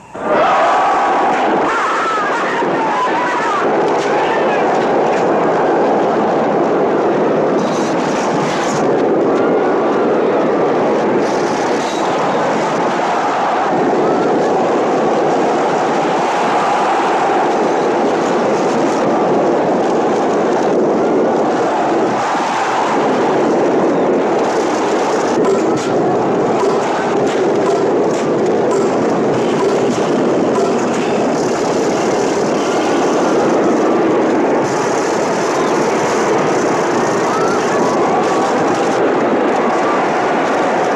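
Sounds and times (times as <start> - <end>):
crowd cheering: 0.0 - 40.9
galloping horses and chariot wheels: 0.0 - 40.9.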